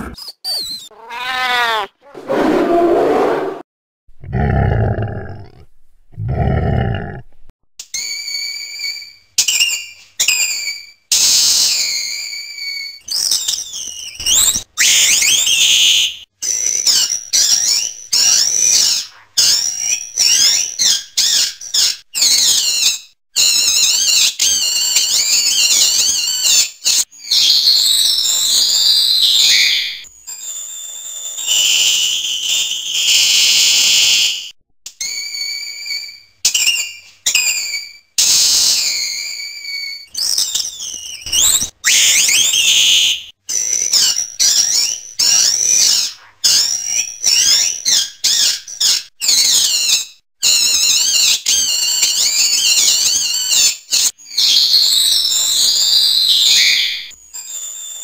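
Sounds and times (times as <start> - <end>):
armadillo squealing: 0.0 - 2.4.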